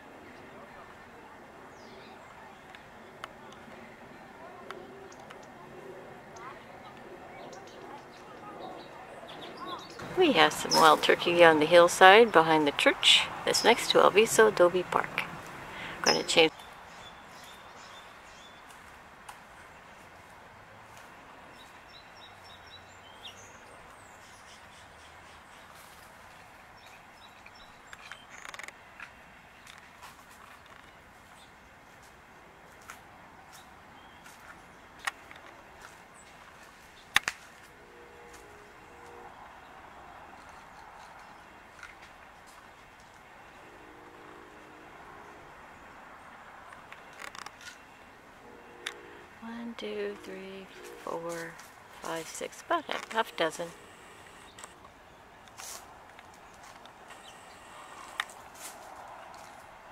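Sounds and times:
distant bird chirps: 43.2s - 55.6s, 56.3s - 58.4s.

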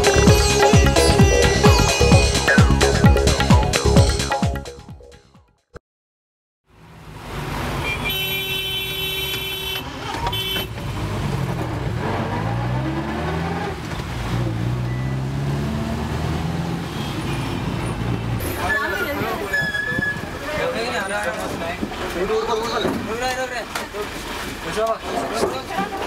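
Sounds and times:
road traffic: 6.7s - 26.0s
vehicle horn honking: 7.8s - 10.8s, 16.8s - 20.2s
voices: 18.4s - 26.0s.

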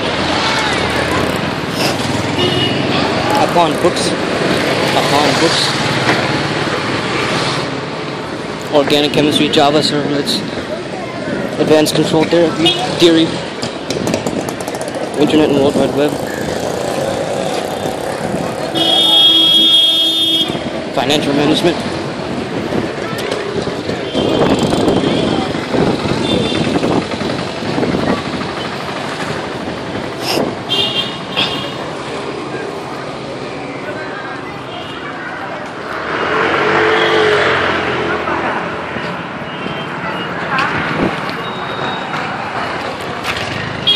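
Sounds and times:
busy street traffic: 0.0s - 43.9s
vehicle horn long honk: 2.4s - 2.8s, 18.8s - 20.6s
vehicle engine passing by: 35.7s - 38.9s.

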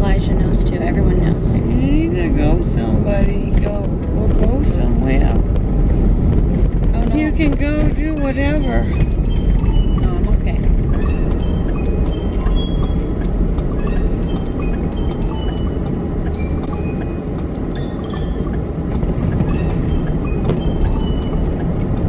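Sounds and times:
car cabin road rumble: 0.0s - 22.0s
high tinkling notes: 7.1s - 22.0s.

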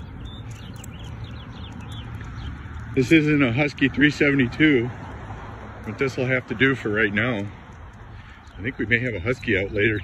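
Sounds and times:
small bird chirping: 0.0s - 3.6s.

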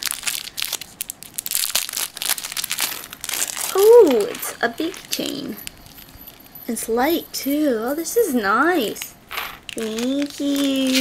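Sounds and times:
plastic bag crinkling: 0.0s - 6.6s, 8.9s - 11.0s.

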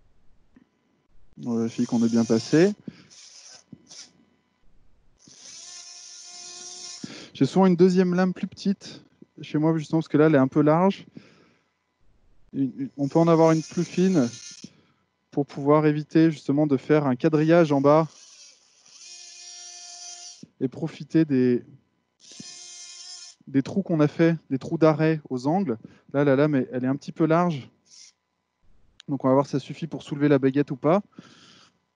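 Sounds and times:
bone saw whining: 1.2s - 8.1s, 12.1s - 14.8s, 17.5s - 20.6s
bone saw high whine: 1.4s - 4.2s, 12.6s - 14.7s.

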